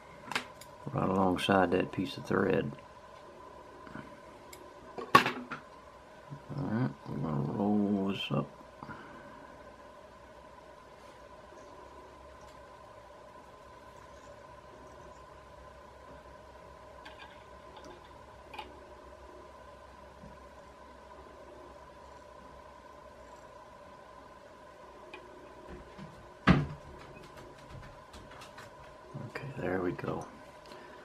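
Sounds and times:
faint electrical hum: 0.0 - 31.0.

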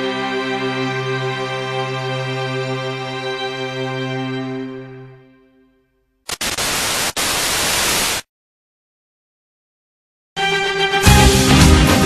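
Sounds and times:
music: 0.0 - 6.2, 10.4 - 12.0
loud static hiss: 6.3 - 8.3.

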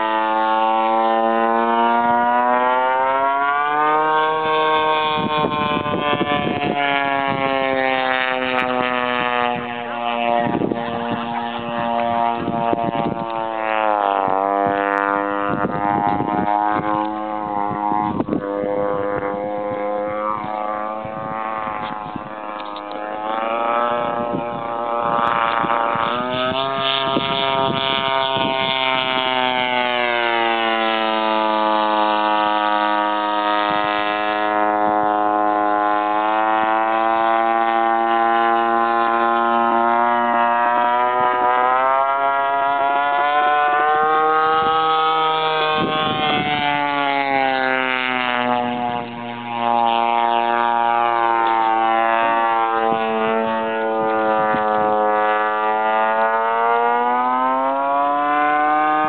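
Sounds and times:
model plane engine screaming past: 0.0 - 59.0.

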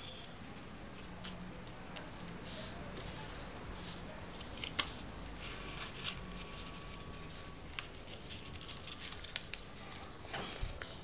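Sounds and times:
paper being folded: 0.1 - 11.0
paper rustling: 1.0 - 11.0.

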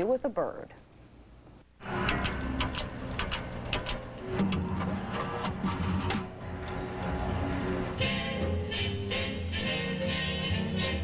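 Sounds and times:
sharp percussive clicks: 1.8 - 4.7
music with held notes: 1.8 - 11.0.

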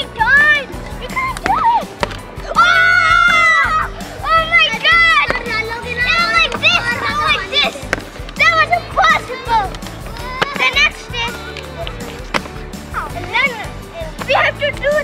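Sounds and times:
background music: 0.0 - 15.0
children calling excitedly: 0.0 - 15.0.

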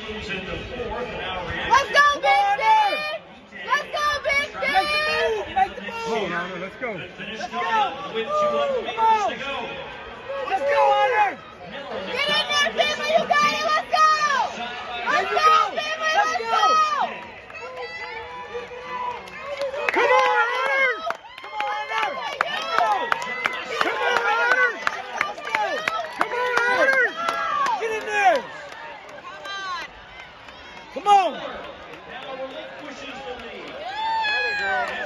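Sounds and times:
crowd noise: 0.0 - 35.0
spectators yelling and cheering: 1.5 - 6.4, 7.4 - 35.0.

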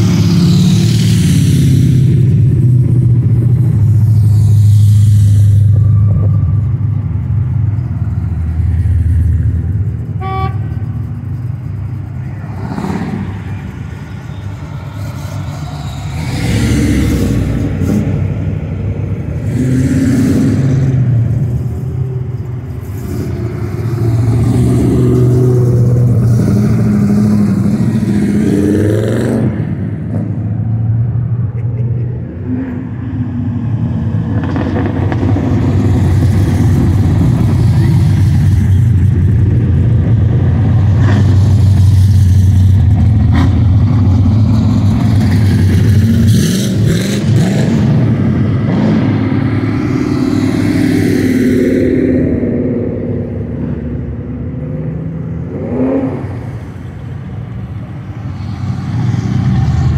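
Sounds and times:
car engines running at low speed: 0.0 - 59.9.

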